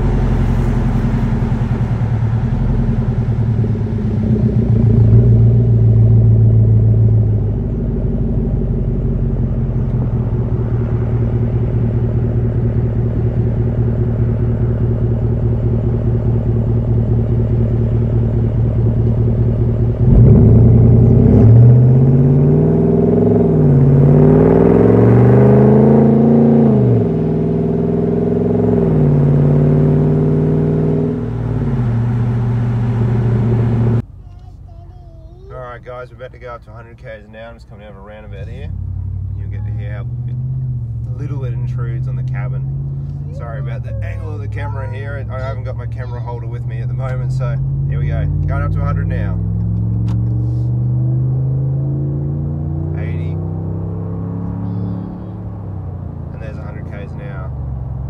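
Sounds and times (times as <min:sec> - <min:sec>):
truck exhaust rumble: 0:00.0 - 0:58.0.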